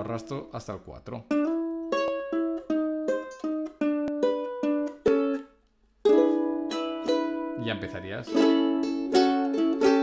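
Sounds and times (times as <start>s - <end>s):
ukulele fingerpicked blues: 1.1s - 10.0s
ukulele chord strum: 1.3s - 10.0s.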